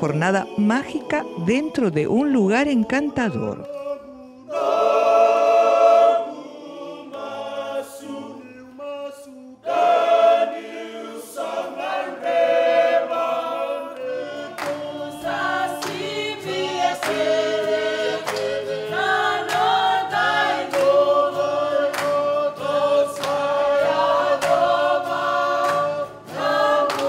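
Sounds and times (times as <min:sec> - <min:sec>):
men singing in close harmony: 0:00.0 - 0:27.0
sharp hand-claps: 0:14.0 - 0:27.0.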